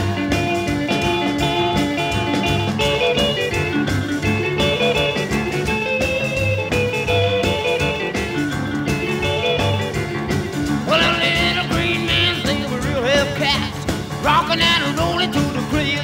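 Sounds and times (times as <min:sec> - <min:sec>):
electric guitar lead: 0:00.0 - 0:16.0
rockabilly band playing: 0:00.0 - 0:16.0.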